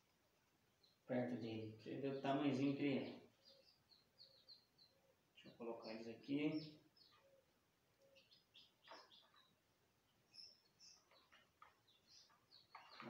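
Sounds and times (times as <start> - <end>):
chicks peeping: 0.6 - 13.0.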